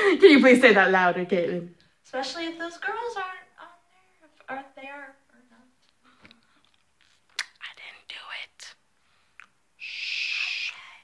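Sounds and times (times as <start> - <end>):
woman whispering: 7.6 - 8.8, 9.8 - 11.0.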